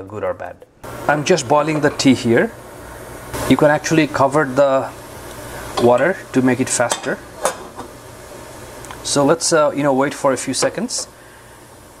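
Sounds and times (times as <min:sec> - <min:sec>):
faint steady hiss: 0:00.0 - 0:12.0.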